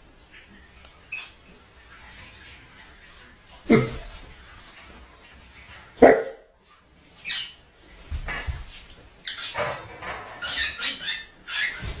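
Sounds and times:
dog barking: 0:06.0 - 0:06.5.

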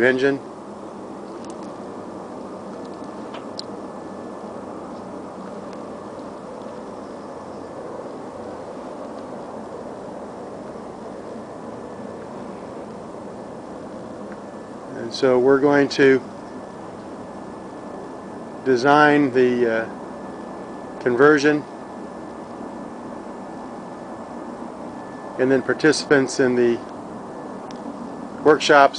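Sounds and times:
steady hum and hiss: 0:00.0 - 0:28.9.

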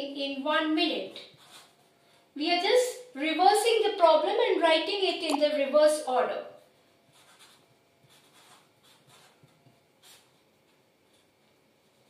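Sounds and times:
marker scratching on paper: 0:01.0 - 0:01.8, 0:07.1 - 0:10.4.

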